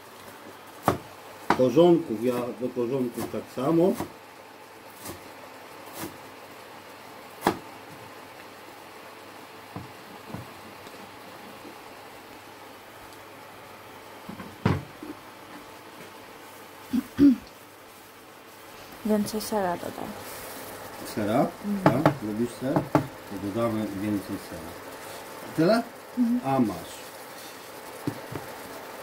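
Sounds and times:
faint steady hiss: 0.0s - 29.0s
cleaver knocking on wooden board: 21.8s - 23.1s.

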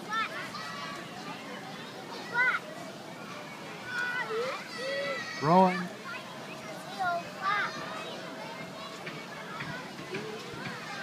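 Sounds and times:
children's voices: 0.0s - 11.0s
outdoor background: 0.0s - 11.0s
child's high-pitched shout: 3.9s - 5.9s.

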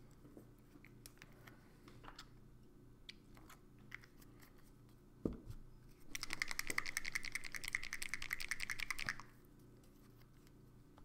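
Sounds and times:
paint bottle ball rattling: 6.1s - 9.3s.

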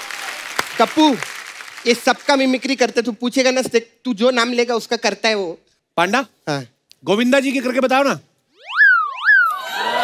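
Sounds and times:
audience applause: 0.0s - 2.4s.

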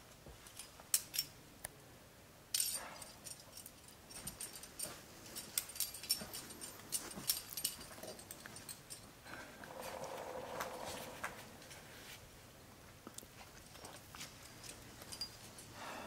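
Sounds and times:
metal climbing gear clinking: 0.4s - 1.4s, 2.5s - 11.9s, 13.4s - 15.9s
drawn-out whining sound: 9.5s - 12.1s.

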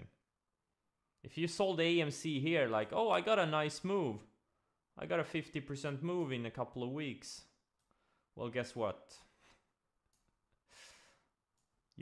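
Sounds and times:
man breathing in: 10.7s - 11.4s.

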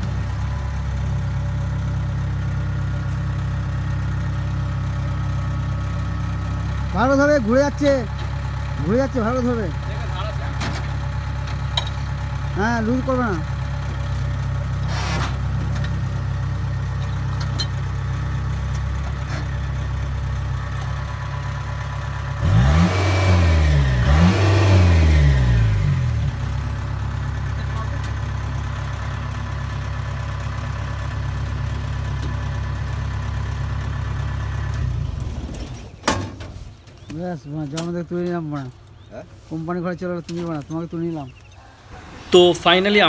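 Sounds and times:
diesel engine running and revving: 0.0s - 36.1s, 36.8s - 43.0s.

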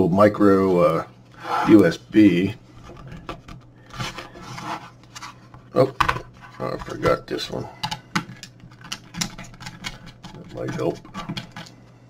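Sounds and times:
hands rubbing plastic case: 2.8s - 11.7s.

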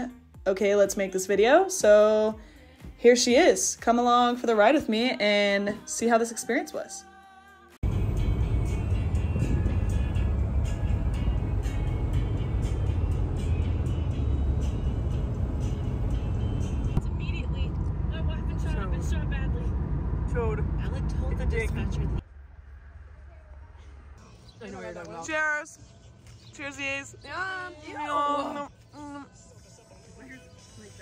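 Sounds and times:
car cabin road noise: 7.8s - 25.6s
voices: 22.8s - 31.0s.

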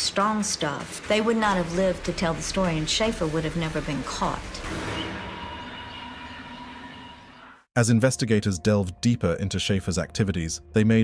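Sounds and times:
steady droning background: 0.0s - 7.7s.

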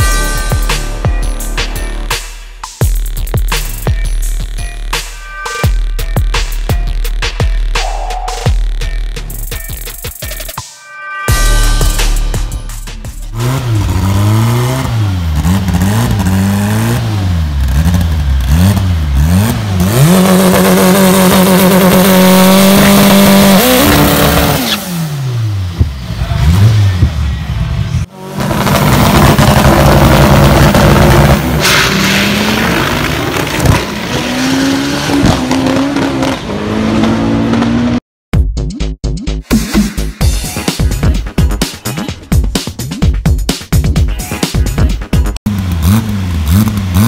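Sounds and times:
turbocharged engine revving: 13.2s - 38.0s, 45.4s - 47.0s.

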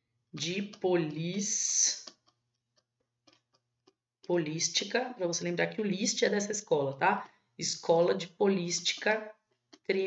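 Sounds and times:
stylus ticking on pen tablet: 0.0s - 10.0s.

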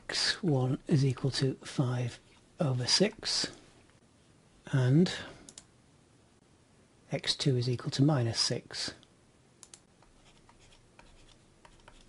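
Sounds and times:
computer mouse clicks: 5.5s - 5.7s, 9.6s - 12.0s.

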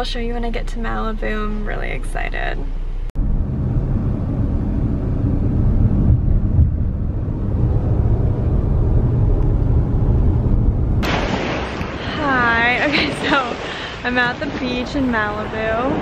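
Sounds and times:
road and wind noise: 0.0s - 16.0s
surf breaking on beach: 11.0s - 16.0s.

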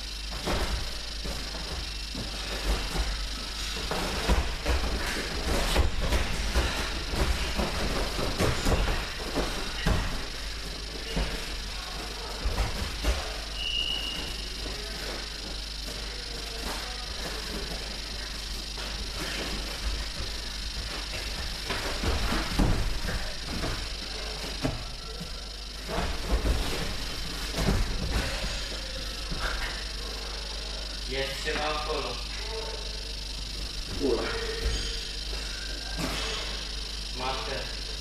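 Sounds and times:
feet scuffing and thumping on mat: 0.3s - 29.8s.

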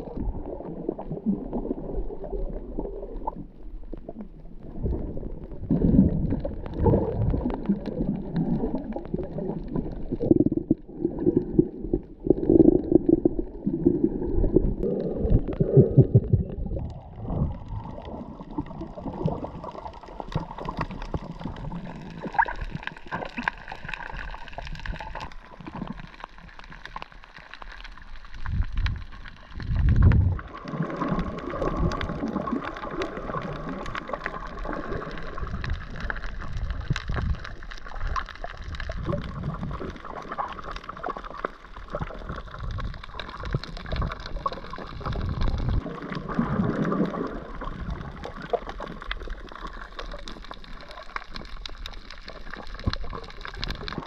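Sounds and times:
low underwater rumbles: 0.0s - 54.0s
water gurgling underwater: 0.0s - 54.0s.

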